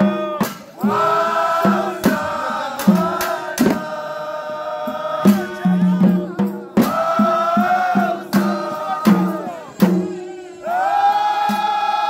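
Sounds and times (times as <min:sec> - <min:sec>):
sharp beat: 0:00.0 - 0:10.5
men chanting together: 0:00.0 - 0:12.0.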